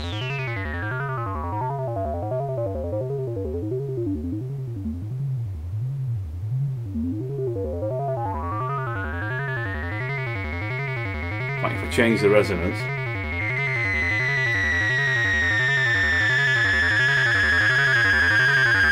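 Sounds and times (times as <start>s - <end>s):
synth bass sequence with filter sweep: 0.0s - 18.9s.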